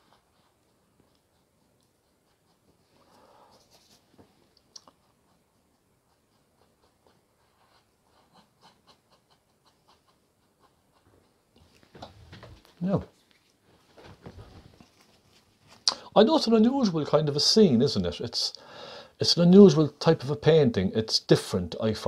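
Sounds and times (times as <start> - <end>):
paintbrush strokes on canvas: 0.0 - 4.5
paintbrush mixing paint on palette: 0.0 - 11.9.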